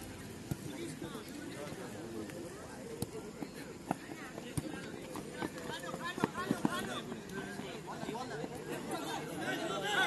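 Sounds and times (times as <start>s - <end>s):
crowd chattering and calling out: 0.0s - 10.0s.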